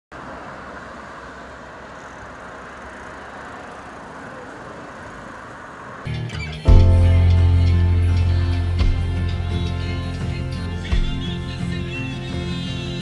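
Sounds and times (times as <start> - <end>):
city street traffic hum: 0.1 - 13.0.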